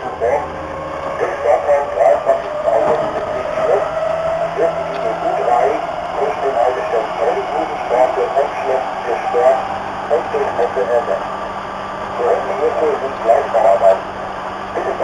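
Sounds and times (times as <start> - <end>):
train running hum: 0.0 - 15.0
people talking indistinctly: 1.1 - 15.0.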